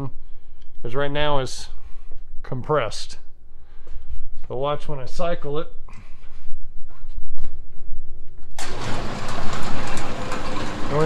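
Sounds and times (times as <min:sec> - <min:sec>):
bowling pinsetter machinery running: 0:08.6 - 0:11.0.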